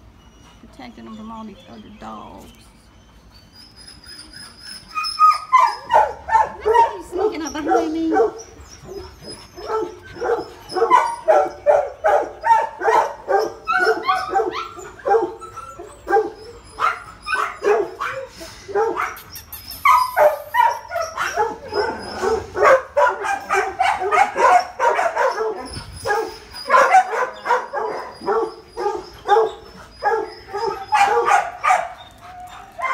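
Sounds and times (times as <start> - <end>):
many dogs barking: 5.5 - 19.2, 19.9 - 32.9.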